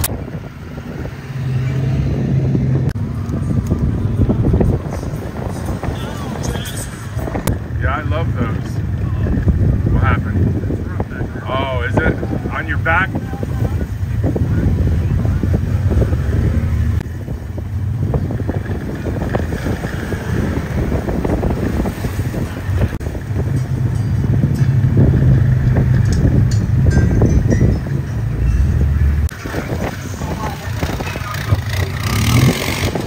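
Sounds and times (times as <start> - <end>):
low engine hum: 0.0 - 33.0
wind rumbling on microphone: 0.0 - 33.0
indistinct voices: 3.9 - 17.0.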